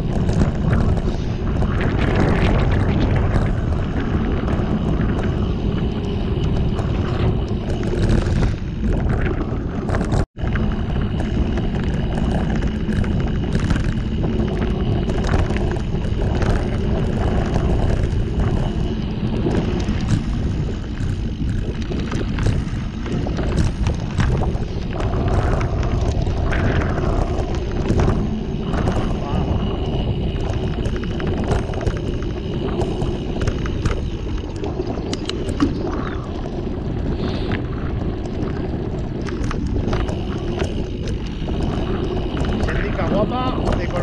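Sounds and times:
bike rattling and clicking: 0.0s - 44.0s
tyres rolling over stones: 0.0s - 44.0s
wind rushing on microphone: 0.0s - 44.0s.

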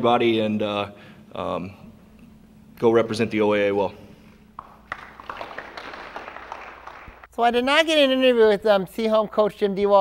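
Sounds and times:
light scattered applause: 4.6s - 7.3s.

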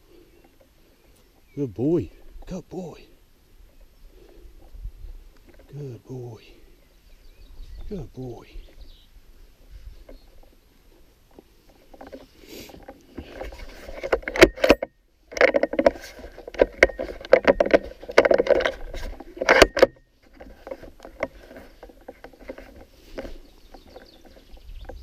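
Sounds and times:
microphone handling noise: 7.2s - 10.6s, 11.3s - 25.0s.

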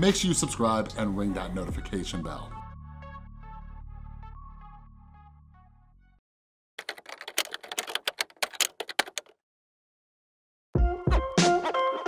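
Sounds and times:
typewriter keystrokes clicking: 6.8s - 9.3s.

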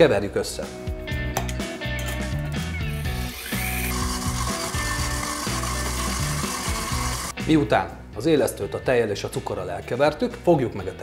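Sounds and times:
background guitar music: 0.0s - 11.0s
stand mixer motor running: 3.1s - 7.3s.

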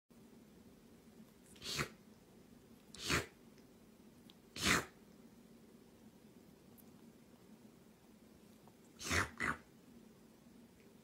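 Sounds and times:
kitten sneezing: 1.6s - 2.0s, 3.0s - 3.4s, 4.5s - 5.0s, 9.0s - 9.6s.

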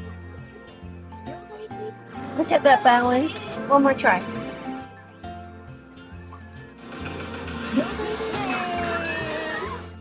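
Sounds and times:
upbeat arcade music: 0.6s - 10.0s.

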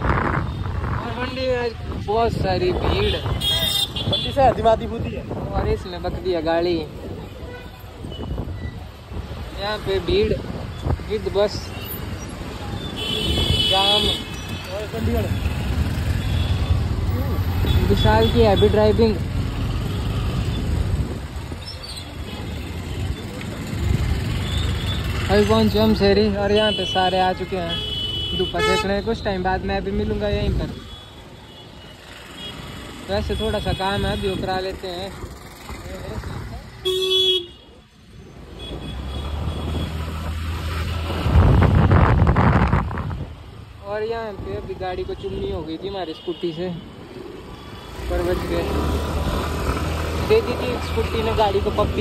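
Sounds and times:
scooter engine and road rumble: 0.0s - 52.0s
street traffic: 0.0s - 52.0s.

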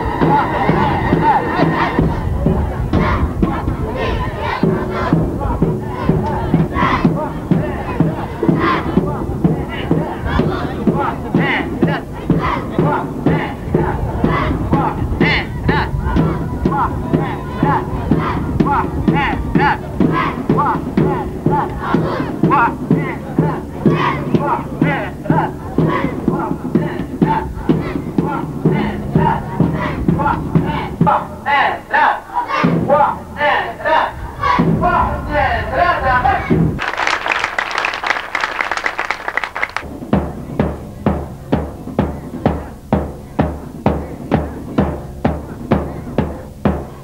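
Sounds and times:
drum beating: 0.0s - 31.9s, 32.5s - 35.3s, 36.4s - 47.0s
men chanting rhythmically: 0.0s - 36.7s.

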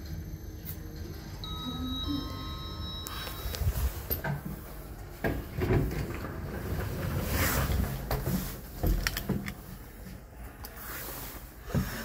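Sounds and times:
lift arrival chime: 0.0s - 4.9s
sliding doors rumbling: 3.8s - 10.0s.

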